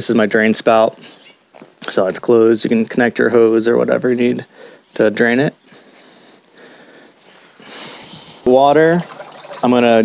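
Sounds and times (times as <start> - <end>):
garden hose water into plastic can: 8.4 - 10.0.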